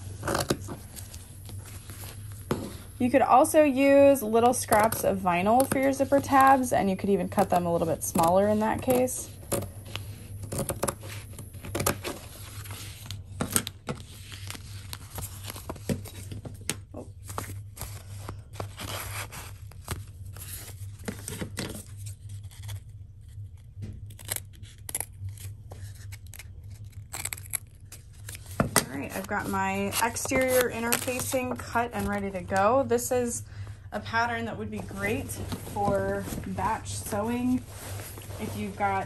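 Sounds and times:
sheet rustling: 34.6s - 39.0s.

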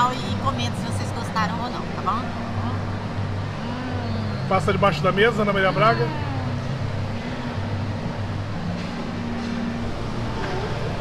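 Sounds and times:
shopping mall background hum: 0.0s - 11.0s.

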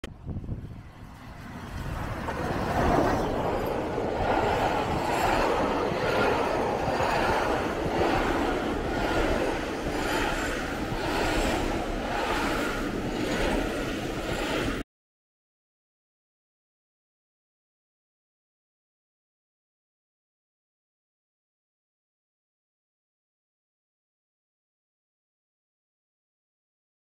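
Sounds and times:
steam train passing: 0.1s - 14.8s
wheels clattering over rail joints: 0.6s - 14.8s.

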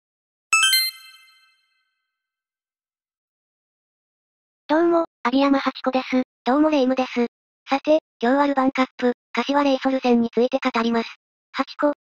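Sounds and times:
rising bell-like chime notes: 0.6s - 1.6s.

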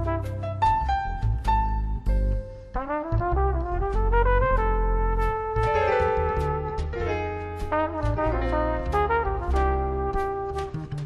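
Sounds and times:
cornet playing: 0.0s - 1.0s, 2.8s - 11.0s
bass: 0.0s - 11.0s
drums: 0.0s - 11.0s.

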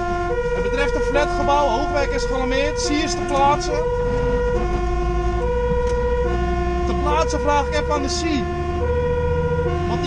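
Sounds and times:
truck engine drone: 0.0s - 10.0s
two-tone siren: 0.0s - 10.0s.

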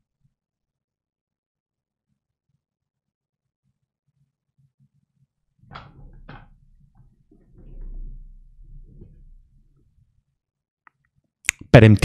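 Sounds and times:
low rumble of movement: 5.6s - 10.2s.

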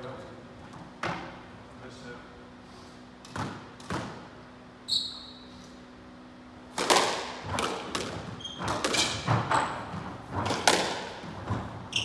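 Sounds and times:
squash ball smacks: 6.7s - 9.6s, 10.3s - 11.7s
shoes squeaking on wooden floor: 8.2s - 10.1s, 11.5s - 12.0s.

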